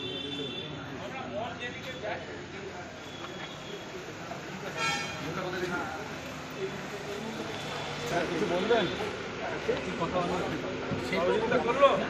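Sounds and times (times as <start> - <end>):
car horn toot: 4.8 - 5.2.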